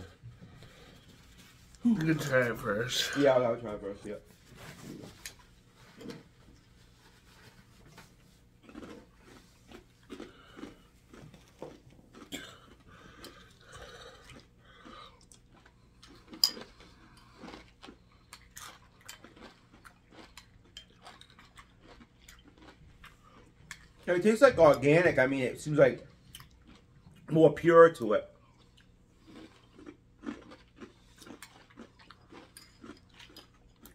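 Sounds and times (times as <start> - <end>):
people chewing crunchy cereal: 0.0 - 24.2, 26.0 - 27.4, 28.3 - 33.9.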